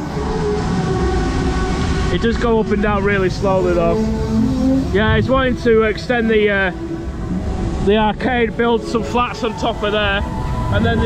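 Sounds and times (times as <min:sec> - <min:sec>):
fairground ride rumbling: 0:00.0 - 0:11.0
wind rushing over microphone: 0:00.0 - 0:11.0.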